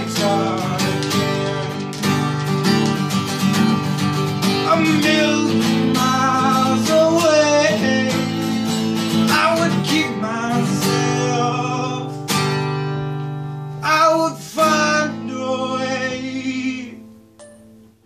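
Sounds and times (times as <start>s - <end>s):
man singing: 0.0s - 1.8s, 4.4s - 12.3s, 13.8s - 17.2s
strummed acoustic guitar: 0.0s - 18.0s.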